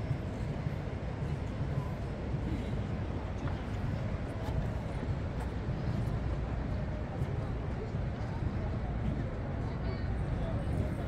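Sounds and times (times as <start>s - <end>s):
boat engine rumble: 0.0s - 11.0s
faint passenger chatter: 0.0s - 11.0s.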